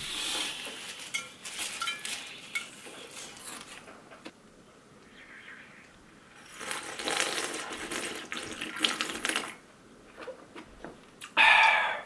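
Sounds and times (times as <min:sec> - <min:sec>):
person slurping slush: 0:06.4 - 0:09.6.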